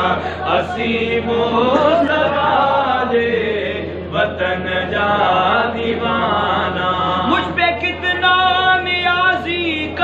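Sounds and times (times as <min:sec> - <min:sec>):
man chanting devotional melody: 0:00.0 - 0:10.0.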